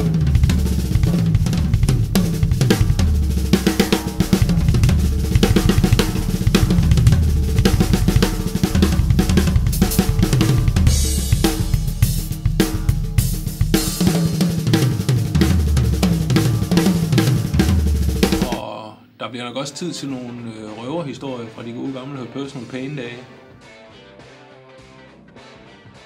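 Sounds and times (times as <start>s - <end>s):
drum kit played fast: 0.0s - 18.7s.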